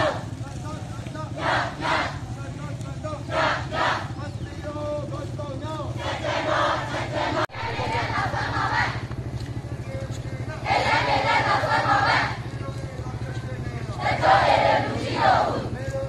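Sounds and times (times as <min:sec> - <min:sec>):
crowd shouting protest chants: 0:00.0 - 0:15.9
steady low hum: 0:01.2 - 0:16.0.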